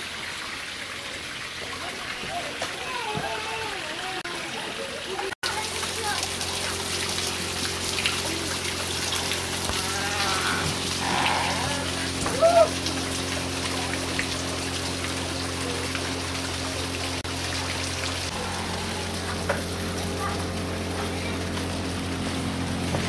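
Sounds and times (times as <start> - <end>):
water trickling into trough: 0.0 - 23.0.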